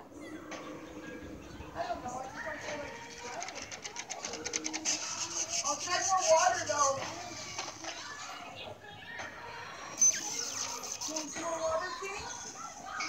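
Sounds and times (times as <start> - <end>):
voices through small speaker: 0.0 - 13.0
fast patter of clicks: 2.7 - 8.2.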